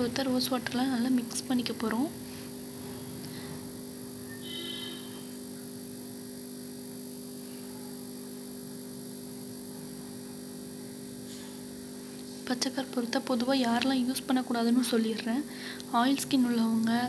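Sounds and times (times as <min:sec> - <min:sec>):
high ringing tone: 0:04.2 - 0:08.7
low steady hum: 0:10.9 - 0:17.0.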